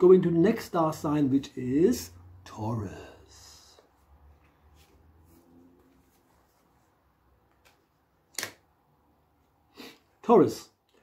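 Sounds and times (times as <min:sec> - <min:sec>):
person speaking: 0:00.0 - 0:04.4.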